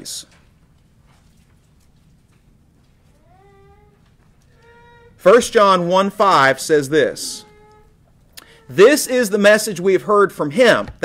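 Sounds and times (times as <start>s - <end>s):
faint high-pitched cries: 3.1s - 9.6s.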